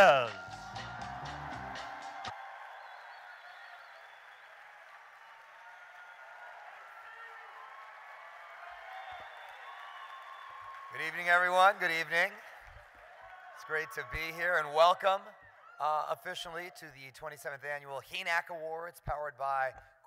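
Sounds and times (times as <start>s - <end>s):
walk-on music: 0.0s - 2.3s
audience applause and cheering: 0.0s - 16.8s.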